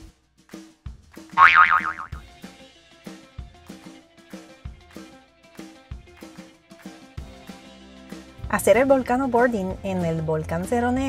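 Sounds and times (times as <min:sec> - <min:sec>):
background music with beat: 0:00.0 - 0:08.5
wobbling comic sound effect: 0:01.4 - 0:02.2.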